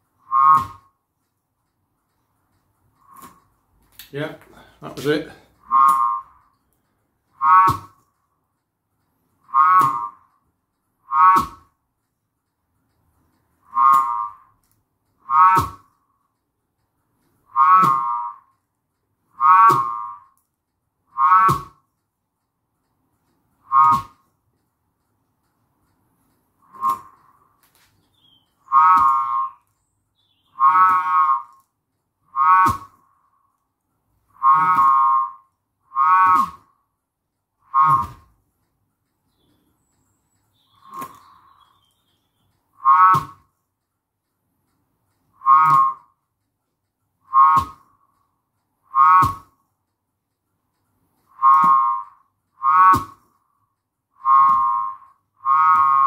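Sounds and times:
button whirligig whistling: 0:00.0 - 0:01.0, 0:03.0 - 0:03.5, 0:05.6 - 0:08.1, 0:09.4 - 0:11.7, 0:13.6 - 0:16.0, 0:17.4 - 0:18.6, 0:19.3 - 0:20.4, 0:21.0 - 0:21.8, 0:23.6 - 0:24.3, 0:26.6 - 0:33.4, 0:34.3 - 0:36.8, 0:37.6 - 0:38.3, 0:39.3 - 0:43.4, 0:45.3 - 0:46.2, 0:47.2 - 0:48.2, 0:48.8 - 0:49.6, 0:51.2 - 0:53.4, 0:54.1 - 0:56.0.

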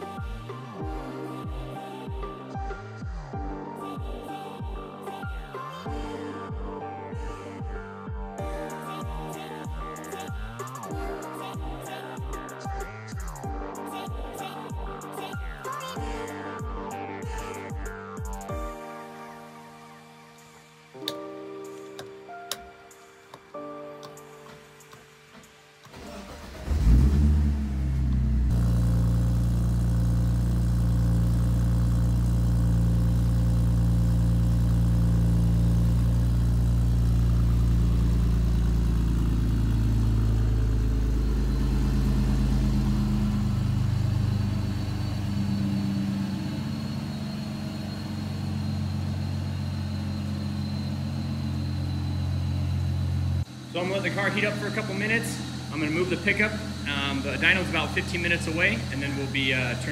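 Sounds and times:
car engine starting and idling: 0:21.0 - 0:59.9.

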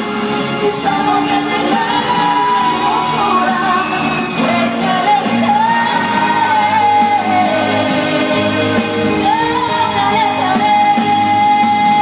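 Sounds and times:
live band music: 0:00.0 - 0:12.0
singer holding long note: 0:00.8 - 0:12.0.

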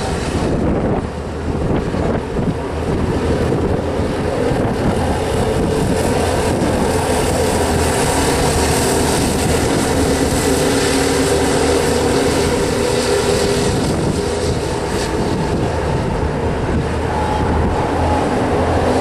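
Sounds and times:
racing kart engines droning: 0:00.0 - 0:19.0.

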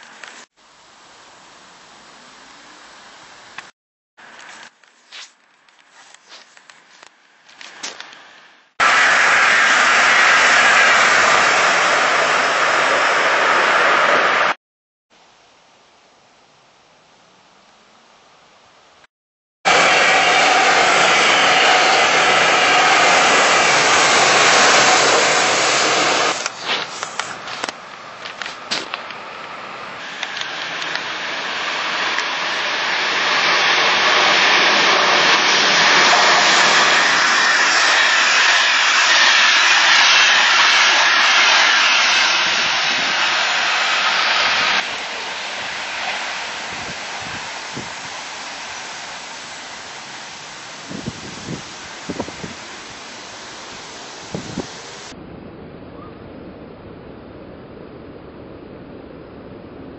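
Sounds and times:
train passing at speed: 0:08.1 - 0:14.6, 0:19.7 - 0:55.2.

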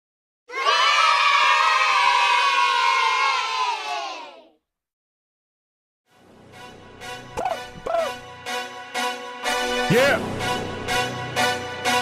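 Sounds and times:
young children cheering: 0:00.5 - 0:04.5.

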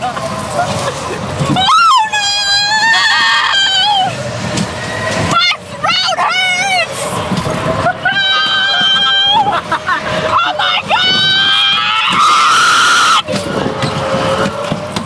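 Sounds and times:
rushing noise: 0:00.0 - 0:15.0
riders screaming: 0:01.5 - 0:04.4, 0:05.3 - 0:13.4.

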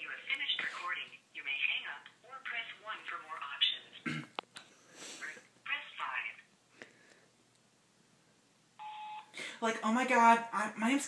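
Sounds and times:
tinny voice over phone speaker: 0:05.2 - 0:06.4.

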